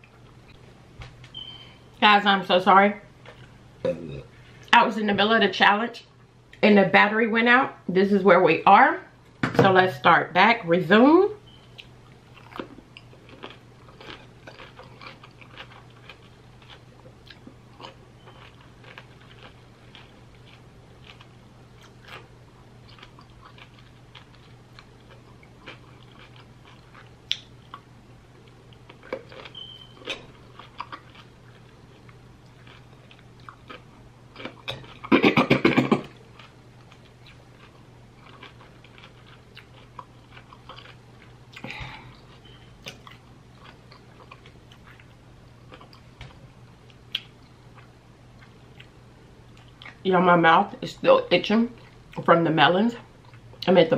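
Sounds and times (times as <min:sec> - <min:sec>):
chewing crisp cucumber: 0:11.7 - 0:35.1, 0:36.1 - 0:46.2.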